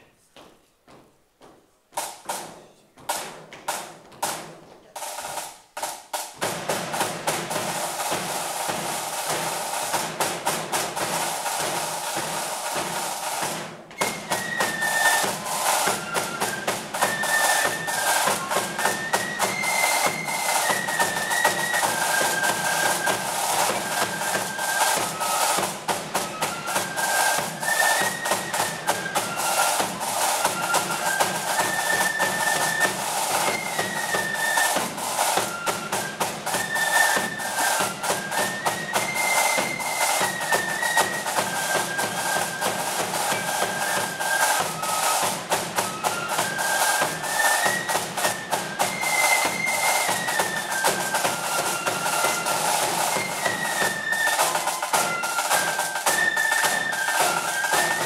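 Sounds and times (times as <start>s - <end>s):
drums playing: 2.0s - 58.0s
massed flute melody: 6.5s - 58.0s.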